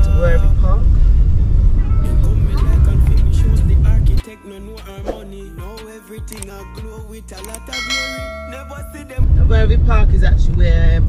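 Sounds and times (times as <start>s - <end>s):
car road and wind noise: 0.0s - 4.2s, 9.2s - 11.0s.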